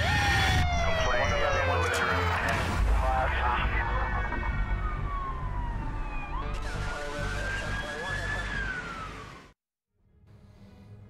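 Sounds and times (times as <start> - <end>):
police siren: 0.0 - 2.6, 3.2 - 9.6.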